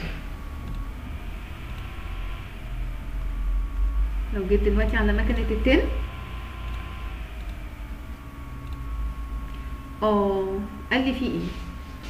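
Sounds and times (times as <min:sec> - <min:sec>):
microphone rumble and hum: 0:00.0 - 0:12.0.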